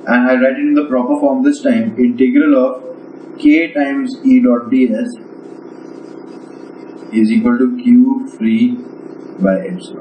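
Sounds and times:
man speaking: 0.0s - 5.4s, 7.0s - 10.0s
low background hum: 0.0s - 10.0s.

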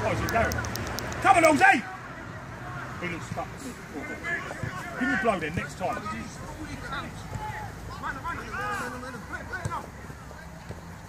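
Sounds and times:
distant shouting voices: 1.2s - 11.0s.

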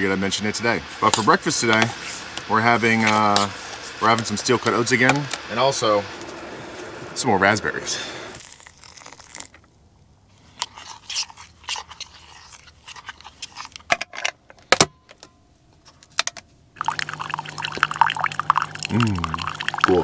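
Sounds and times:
coffee machine humming: 0.0s - 8.4s, 16.8s - 20.0s
coffee gurgling into a mug: 16.8s - 20.0s.

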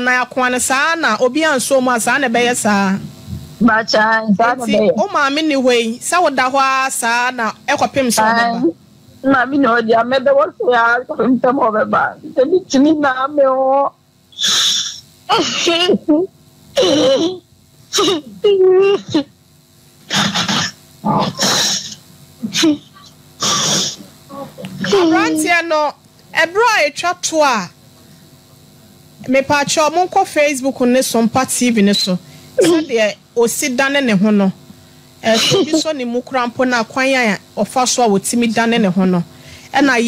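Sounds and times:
faint low hum: 0.0s - 40.0s
person speaking: 3.9s - 13.0s, 20.2s - 26.7s, 32.6s - 33.2s
short voiced sounds: 14.3s - 19.3s, 20.1s - 25.6s, 32.6s - 33.1s
person's breathy voice bursts: 14.4s - 15.5s, 20.1s - 22.8s, 23.4s - 25.2s.

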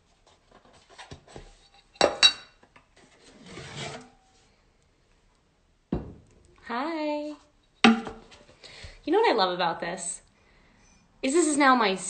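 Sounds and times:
bottle sliding out of cardboard tube: 3.2s - 4.2s.

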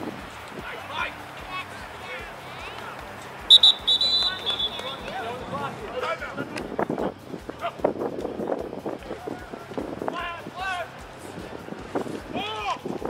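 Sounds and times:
shouts and chatter of people: 0.2s - 8.3s, 8.9s - 13.0s
referee's whistle blasts: 3.5s - 5.3s.

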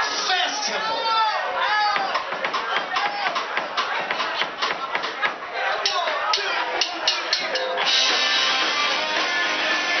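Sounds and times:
live rock band playing: 5.7s - 10.0s.

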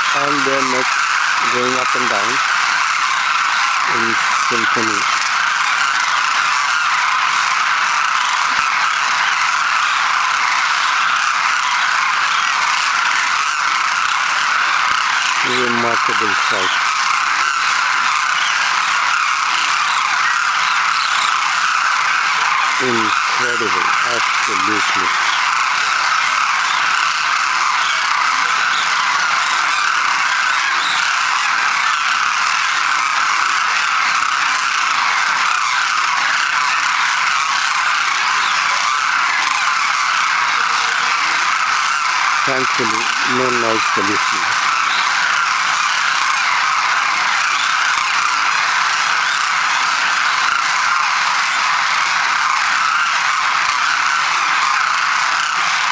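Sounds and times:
flock of cranes calling: 0.0s - 55.9s.

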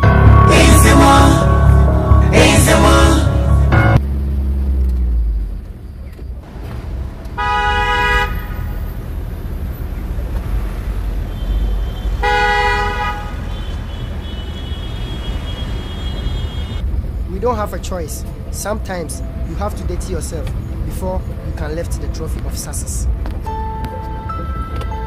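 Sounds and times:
vehicle driving rumble: 0.0s - 25.0s
car horn blasts: 7.3s - 9.0s, 11.3s - 16.8s.

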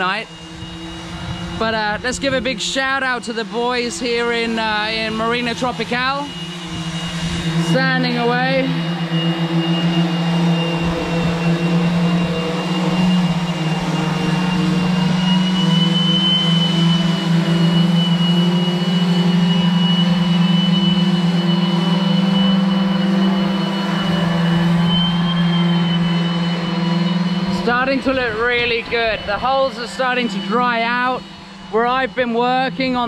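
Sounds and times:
electric power sanders humming: 0.0s - 33.0s.

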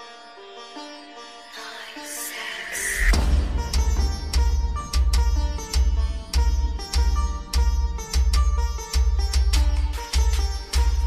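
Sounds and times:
plucked string melody: 0.0s - 11.0s
hissing riser: 2.2s - 7.6s.

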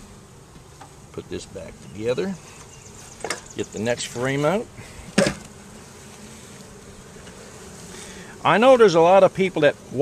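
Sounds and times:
bees humming: 0.0s - 10.0s.

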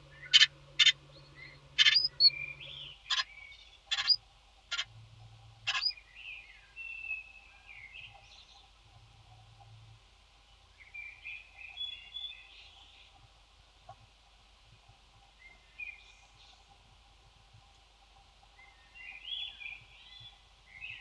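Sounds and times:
bird chirps and gliding calls: 0.0s - 4.9s, 5.6s - 8.7s.

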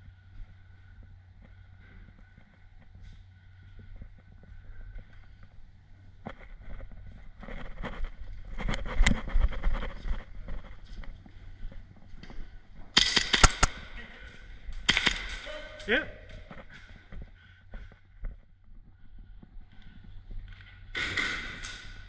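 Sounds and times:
airsoft gun firing: 13.0s - 13.9s, 14.8s - 15.5s.

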